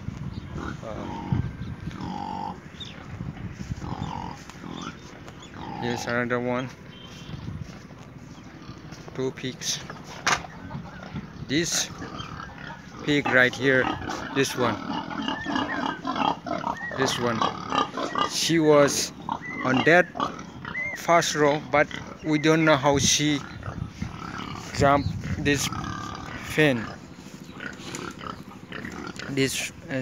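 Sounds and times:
pigs grunting: 0.4 - 6.6, 8.4 - 30.0.

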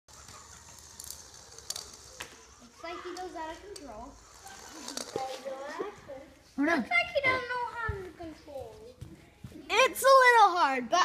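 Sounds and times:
robot ball motors whirring faintly: 0.1 - 6.4.

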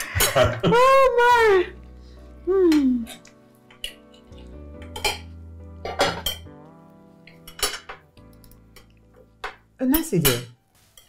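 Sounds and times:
soft background music: 0.0 - 11.0
cutlery clinking on plates: 3.1 - 6.6, 7.3 - 11.0.

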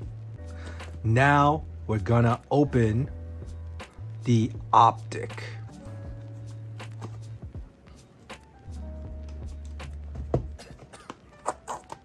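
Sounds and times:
low background music: 0.0 - 12.0.

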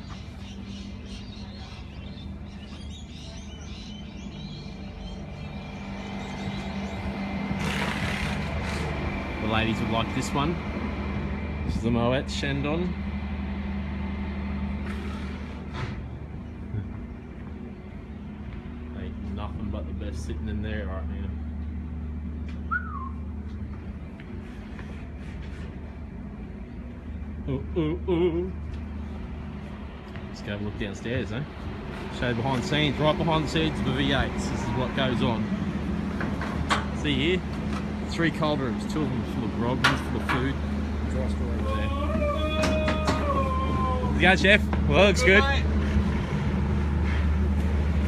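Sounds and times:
small birds chirping: 0.0 - 7.2
low machine hum: 0.0 - 48.0
whistle-like chirp: 22.6 - 23.2.

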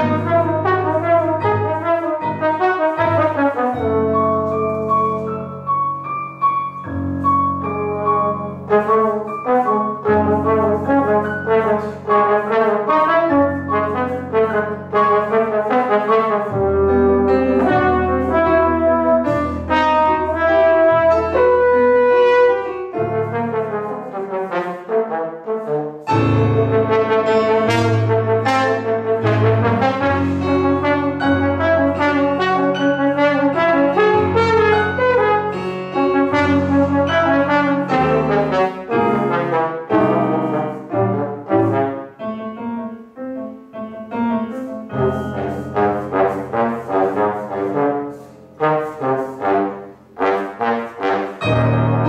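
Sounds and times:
stage piano accompaniment: 0.0 - 52.0
trombone melody: 0.0 - 52.0.

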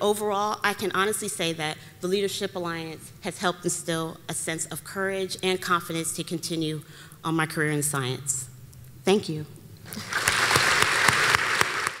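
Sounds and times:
audience applauding: 9.9 - 12.0.

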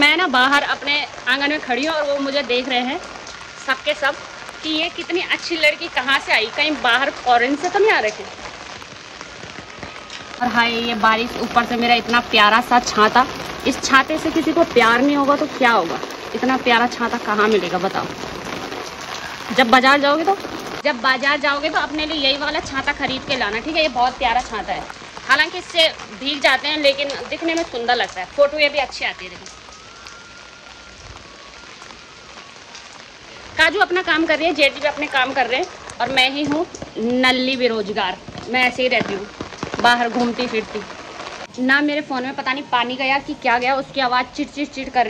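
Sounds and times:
heavy rain hissing: 0.0 - 45.0
raindrops pattering on umbrella: 0.0 - 45.0.

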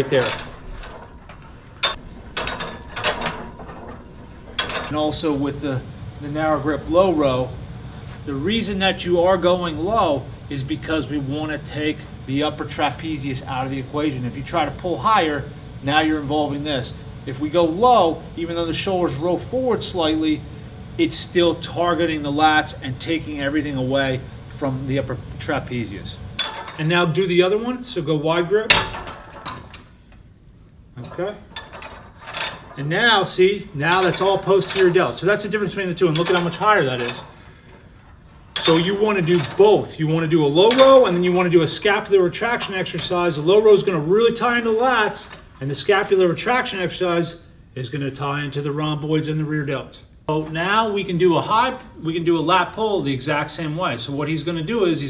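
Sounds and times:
cable row machine running: 0.0 - 7.4, 31.0 - 45.3.

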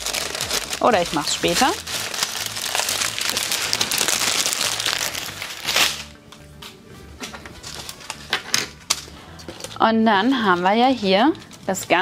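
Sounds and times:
plastic bags crinkling: 0.0 - 6.2, 7.6 - 12.0
background music: 0.0 - 12.0.

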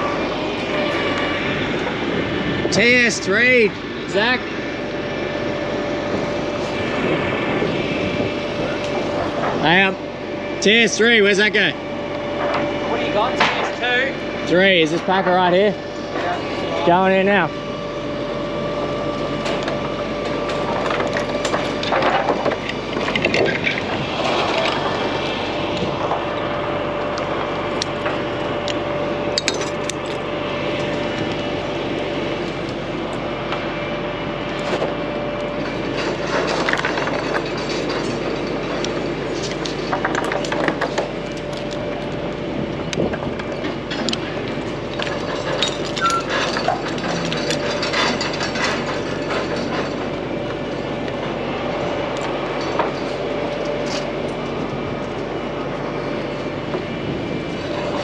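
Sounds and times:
steady machine drone: 0.0 - 58.0.

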